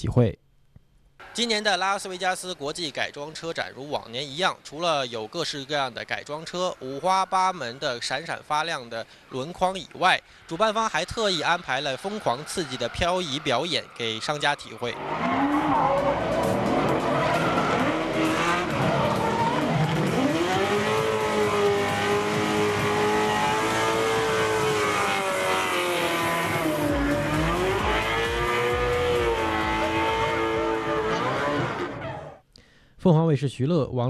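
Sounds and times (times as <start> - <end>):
tyres skidding and squealing: 1.2 - 32.4
car engine at high revs: 14.9 - 32.3.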